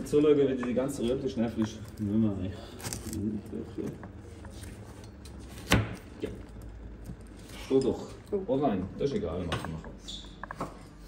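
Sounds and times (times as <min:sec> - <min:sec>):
knife chopping on plastic board: 0:05.5 - 0:06.0.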